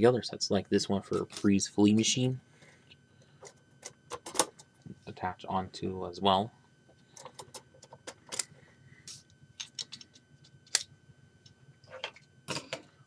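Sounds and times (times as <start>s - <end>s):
plastic parts clicking: 9.6s - 10.8s.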